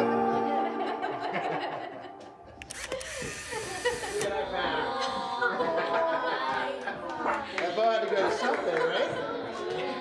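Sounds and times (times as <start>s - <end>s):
indistinct chatter of voices: 2.7s - 10.0s.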